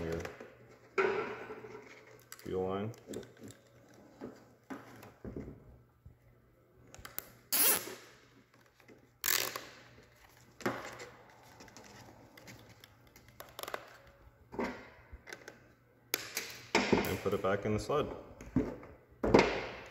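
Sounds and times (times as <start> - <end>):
zip tie rasping: 7.5 - 8.0.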